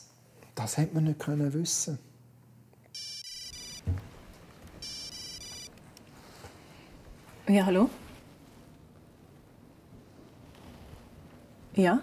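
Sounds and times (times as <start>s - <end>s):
phone ringtone high beeps: 3.0s - 3.8s, 4.8s - 5.7s
dull thump: 3.8s - 4.2s.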